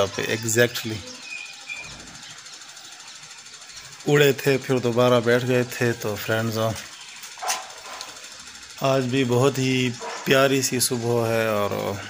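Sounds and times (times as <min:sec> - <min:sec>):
machine-like hum: 0:00.0 - 0:12.0.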